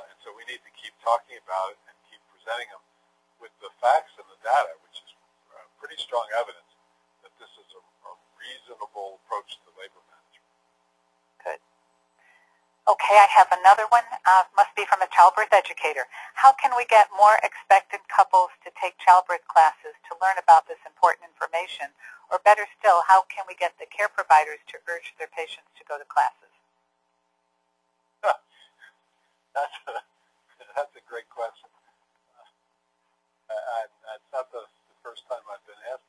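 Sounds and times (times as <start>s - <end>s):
faint steady hum: 0.0s - 36.0s
person speaking: 3.4s - 6.6s, 12.9s - 26.3s, 29.6s - 30.0s
short vocal sound: 28.2s - 28.4s
faint murmurs: 28.2s - 29.0s.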